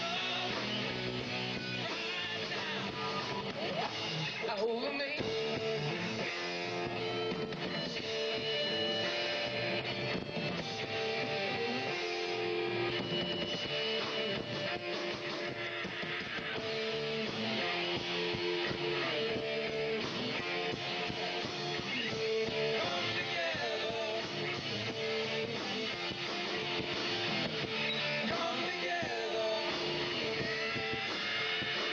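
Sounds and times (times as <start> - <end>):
bass guitar: 0.0 - 31.9
rock band playing live: 0.0 - 31.9
strummed electric guitar: 0.0 - 31.9.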